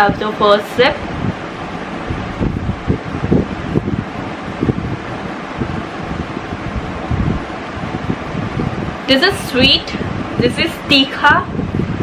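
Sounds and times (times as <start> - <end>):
rushing air noise: 0.0 - 12.0
wind buffeting microphone: 0.0 - 12.0.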